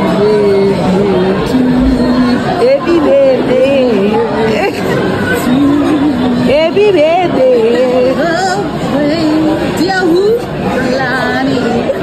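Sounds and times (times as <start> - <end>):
voices chattering indoors: 0.0 - 12.0.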